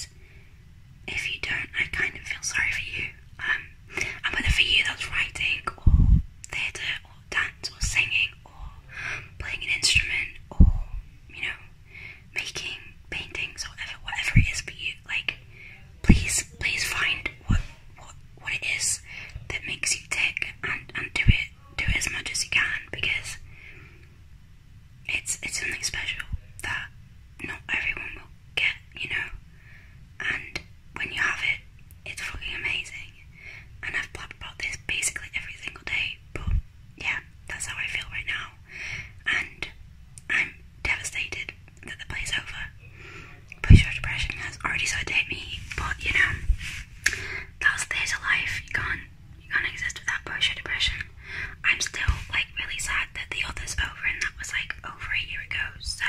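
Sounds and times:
woman whispering: 1.1s - 11.7s, 12.3s - 23.4s, 25.1s - 29.4s, 30.2s - 38.6s, 39.2s - 56.0s.

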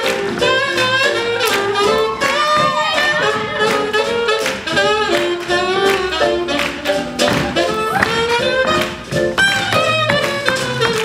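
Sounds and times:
saxophones playing melody: 0.0s - 11.0s
swing band playing: 0.0s - 11.0s.

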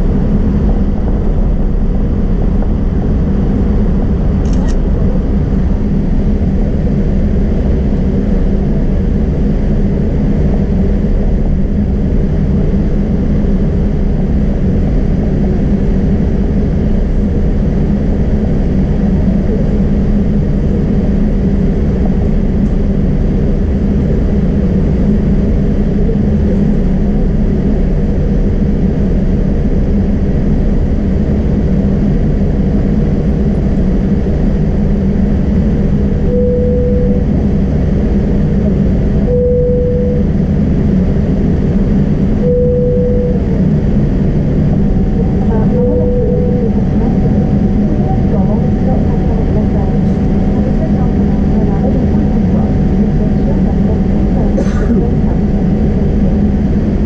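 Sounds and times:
jet engines humming in cabin: 0.0s - 57.0s
faint steady tone: 36.2s - 37.4s, 39.2s - 40.4s, 42.3s - 43.6s, 44.4s - 53.0s.

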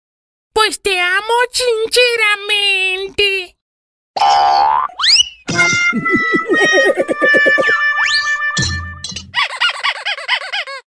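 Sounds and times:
steady musical tones: 5.5s - 8.9s
high-pitched cartoon laughter: 5.9s - 8.4s, 9.4s - 10.9s.

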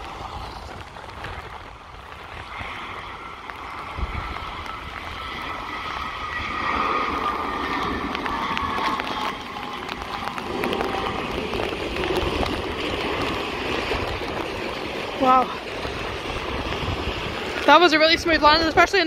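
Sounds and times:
jet engines whining: 0.0s - 19.0s
rush of noise: 0.0s - 19.0s.

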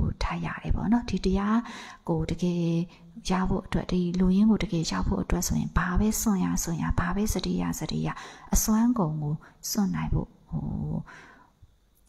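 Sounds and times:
woman speaking: 0.0s - 11.1s
breath: 1.6s - 2.0s, 8.2s - 8.5s, 11.1s - 11.6s.

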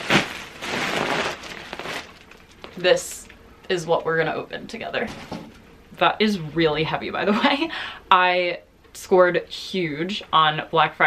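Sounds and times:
plastic bag crinkling: 0.0s - 3.2s
sharp plastic crackle: 0.0s - 3.4s.

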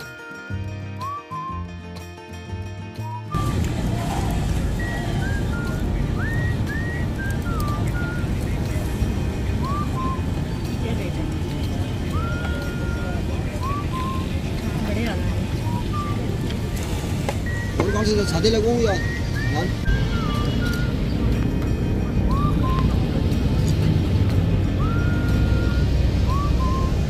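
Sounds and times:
crowd chatter: 3.3s - 26.9s
traffic hum: 3.3s - 27.0s
high whistled chirps: 4.6s - 8.3s, 9.6s - 10.7s, 12.1s - 14.4s, 15.6s - 21.2s, 22.3s - 23.0s, 24.8s - 27.0s.

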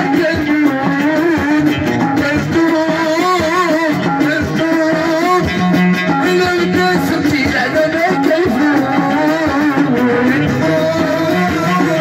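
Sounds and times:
plucked lute strings: 0.0s - 12.0s
steady beat: 0.0s - 12.0s.

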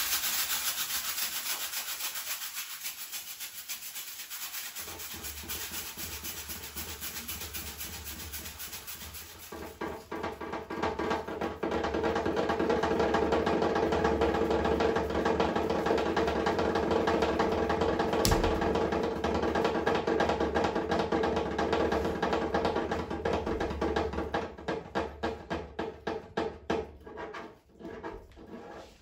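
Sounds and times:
sharp drum crack: 18.2s - 19.2s.

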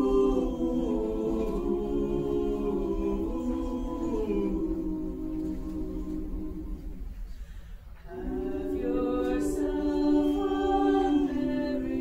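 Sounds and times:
mixed choir singing a cappella: 0.0s - 7.4s, 8.0s - 12.0s.

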